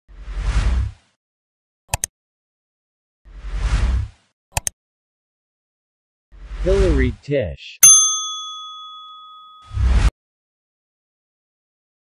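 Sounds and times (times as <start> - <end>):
notification bell ding: 7.8 - 9.7.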